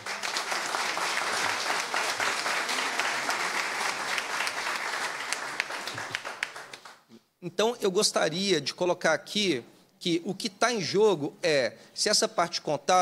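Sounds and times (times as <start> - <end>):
crowd clapping: 0.0 - 7.1.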